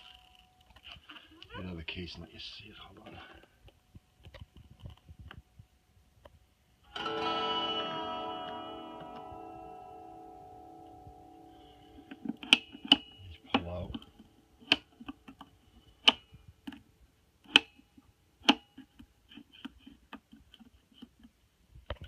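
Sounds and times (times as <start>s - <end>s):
electric guitar chord ringing: 6.9s - 14.5s.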